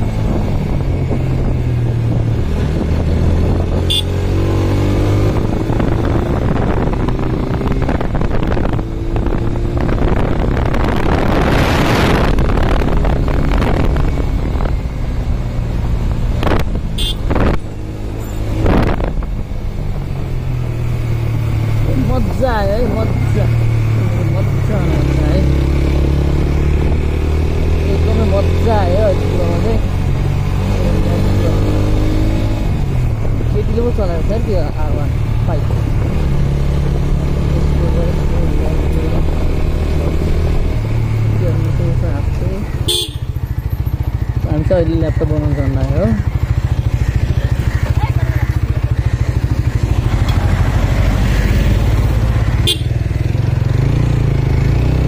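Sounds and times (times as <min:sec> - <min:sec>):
wind noise on microphone: 0:00.0 - 0:20.6
motorcycle engine running: 0:00.0 - 0:55.0.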